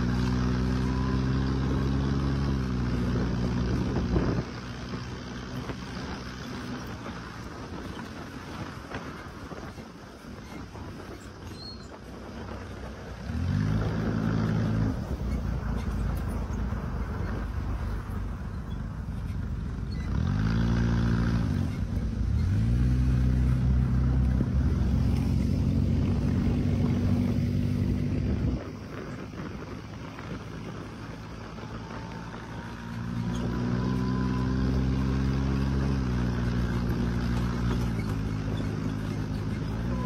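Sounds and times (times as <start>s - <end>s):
dune buggy engine revving: 0.0s - 40.0s.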